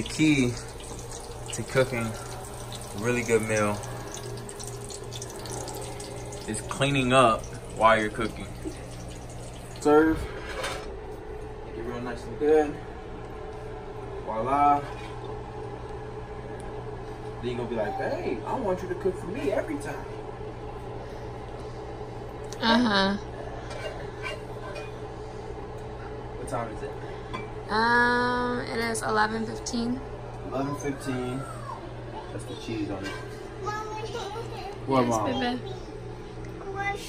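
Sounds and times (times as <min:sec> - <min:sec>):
low electrical hum: 0:00.0 - 0:37.0.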